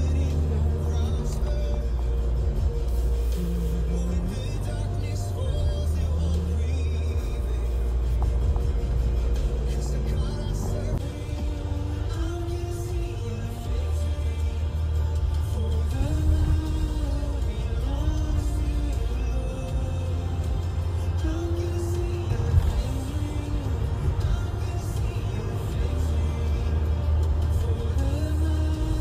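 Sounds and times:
sliding melody over deep bass: 0.0s - 29.0s.

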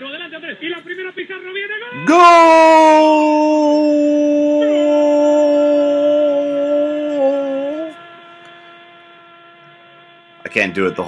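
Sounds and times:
man shouting goal: 2.0s - 8.0s.

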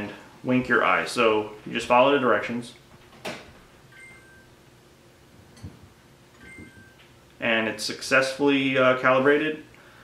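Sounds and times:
faint electronic chime: 3.9s - 4.6s, 6.4s - 7.1s.

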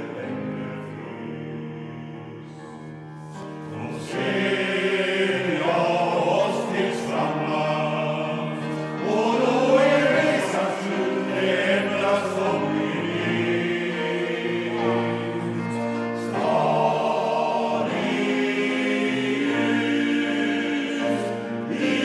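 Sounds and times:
men's choir singing in harmony: 0.0s - 22.0s.

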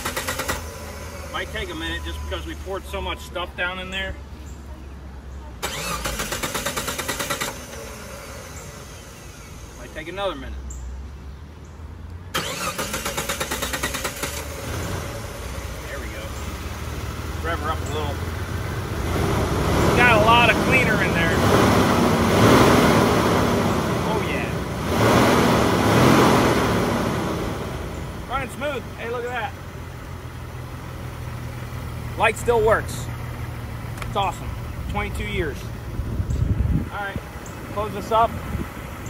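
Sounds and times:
car engine starting and running: 0.0s - 39.0s.

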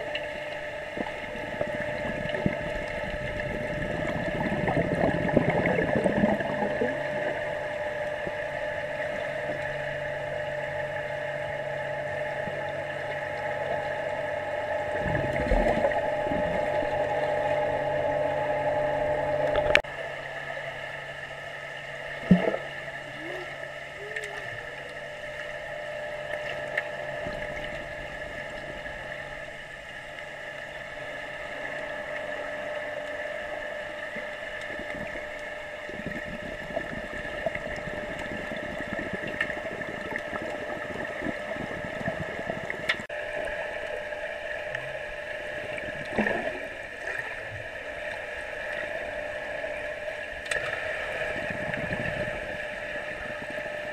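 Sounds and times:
bubbling and splashing: 0.0s - 19.9s, 21.8s - 53.9s
underwater mechanical hum: 0.0s - 53.9s.

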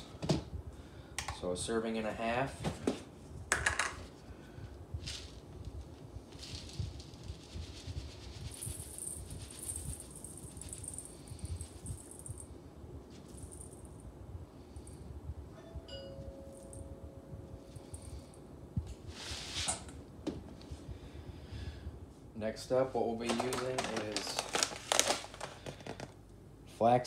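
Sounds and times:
low steady rumble: 0.0s - 27.0s
faint steady tone: 10.2s - 18.6s.

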